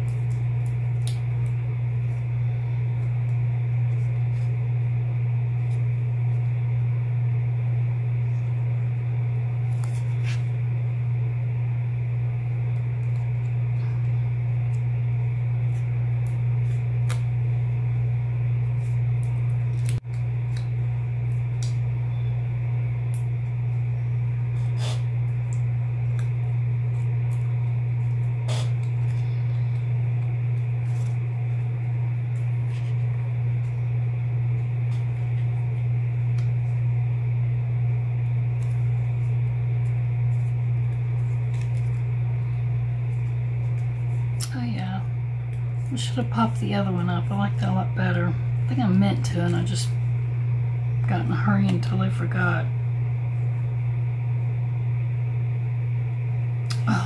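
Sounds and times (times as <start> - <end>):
loud steady low hum: 0.0 - 57.0.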